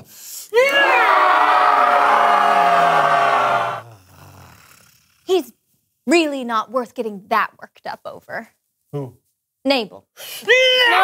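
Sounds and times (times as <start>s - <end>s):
man yelling in rage: 10.5s - 11.0s.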